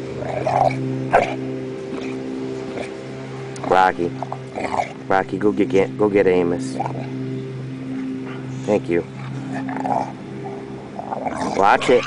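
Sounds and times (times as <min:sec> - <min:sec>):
dogs growling: 0:00.0 - 0:05.6, 0:06.3 - 0:12.0.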